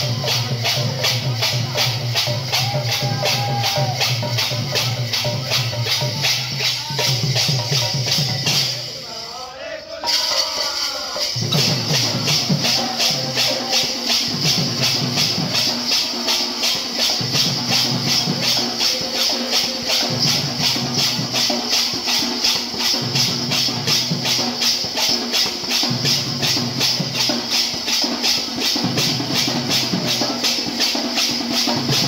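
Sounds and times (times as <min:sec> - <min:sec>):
barrel drum playing: 0:00.0 - 0:09.1, 0:10.0 - 0:32.0
hand cymbals struck fast: 0:00.0 - 0:32.0.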